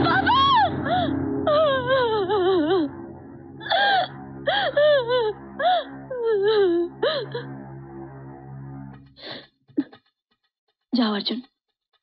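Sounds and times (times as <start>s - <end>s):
woman wailing and sobbing: 0.0s - 2.9s, 3.6s - 7.5s
soft sustained music score: 0.0s - 9.6s.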